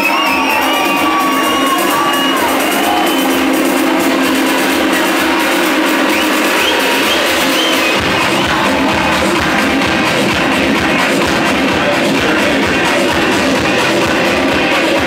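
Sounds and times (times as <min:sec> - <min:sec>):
crowd cheering: 0:00.0 - 0:15.0
electronic dance music: 0:00.0 - 0:15.0.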